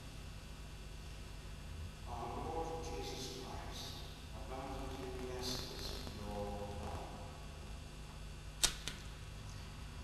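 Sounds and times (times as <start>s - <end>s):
steady low hum: 0.0s - 10.0s
short sharp clicks: 8.6s - 9.0s.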